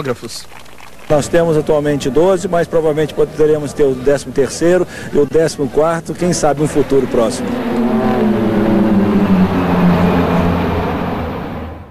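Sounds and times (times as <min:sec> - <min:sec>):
propeller aircraft droning past: 0:01.2 - 0:11.9.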